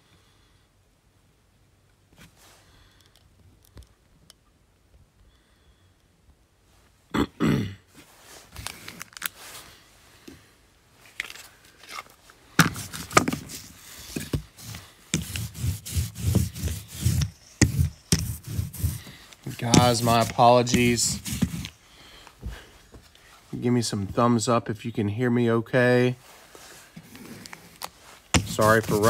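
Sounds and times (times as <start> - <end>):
knocking and scraping: 12.6 - 21.8, 28.3 - 29.0.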